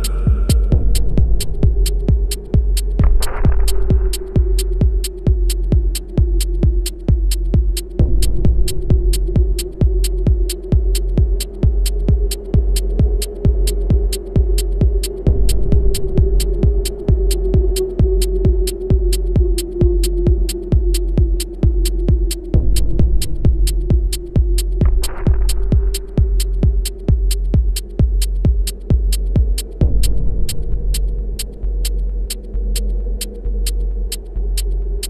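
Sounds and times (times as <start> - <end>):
kick drum beat: 0.0 - 34.7
deep bass: 0.0 - 35.0.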